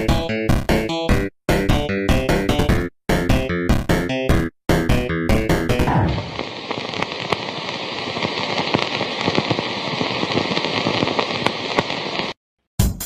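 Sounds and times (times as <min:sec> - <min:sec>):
crackling hiss with pops and clicks: 0:05.3 - 0:12.4.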